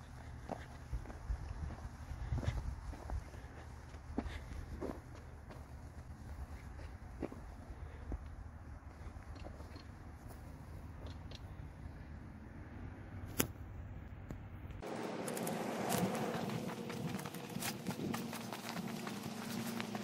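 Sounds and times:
footsteps on dirt and gravel: 0:00.0 - 0:11.5, 0:14.8 - 0:20.0
steady low rumble: 0:00.0 - 0:20.0.

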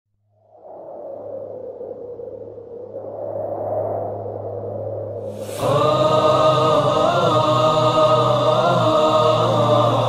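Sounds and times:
steady low hum: 0:00.3 - 0:10.0
hazy drone: 0:00.4 - 0:10.0.

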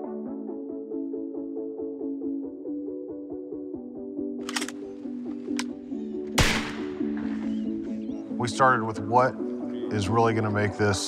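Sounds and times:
background music: 0:00.0 - 0:11.0
rifle shot: 0:06.3 - 0:07.7.

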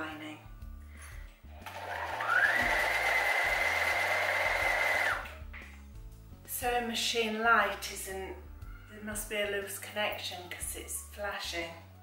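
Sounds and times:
sewing machine motor whine: 0:01.6 - 0:05.2.

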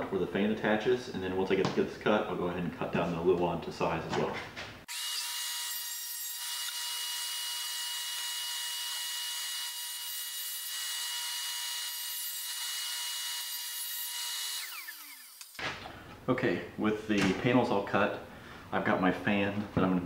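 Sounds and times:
table saw whine: 0:04.9 - 0:15.6.

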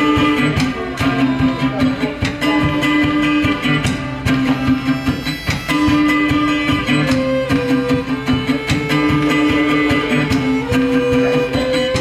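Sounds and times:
drum kit beat: 0:00.0 - 0:12.0
fiddle bowed notes: 0:00.0 - 0:12.0
strummed acoustic guitar: 0:00.0 - 0:12.0.

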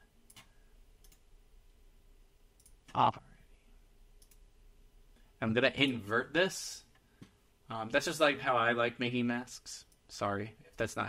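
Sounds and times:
computer mouse clicks: 0:00.2 - 0:01.2, 0:02.6 - 0:03.0, 0:04.2 - 0:04.4.

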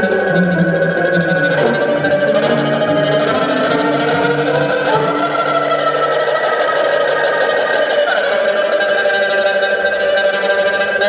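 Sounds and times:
ensemble holding sustained notes: 0:00.0 - 0:11.0.

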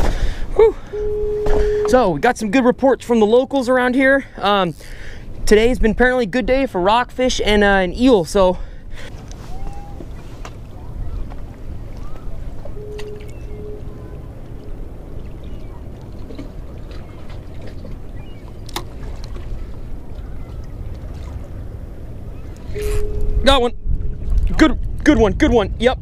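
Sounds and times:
faint steady hum: 0:00.1 - 0:02.4, 0:08.6 - 0:24.4
low wind rumble on microphone: 0:05.2 - 0:26.0.

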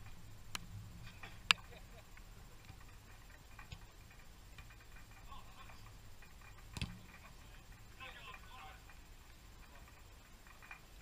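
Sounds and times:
light scattered ticks: 0:00.0 - 0:11.0.

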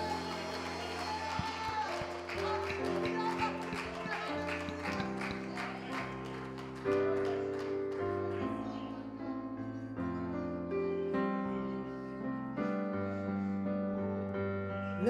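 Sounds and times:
hand claps: 0:00.0 - 0:08.3
keyboard chords: 0:00.0 - 0:15.0.

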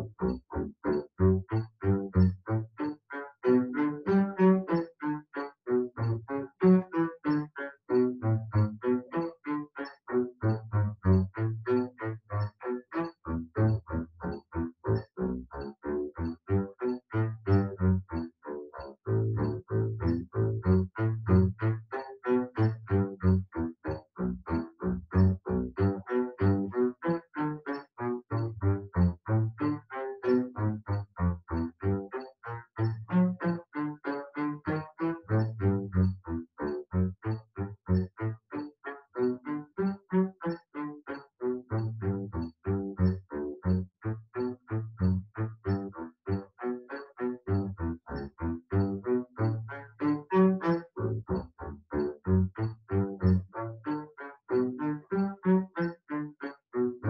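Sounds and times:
bowed double bass staccato: 0:00.0 - 0:57.0
metronome ticking: 0:00.0 - 0:57.0.

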